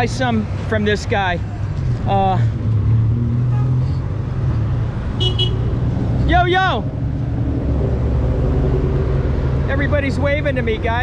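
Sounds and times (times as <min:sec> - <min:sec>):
cars driving past: 0:00.0 - 0:11.0.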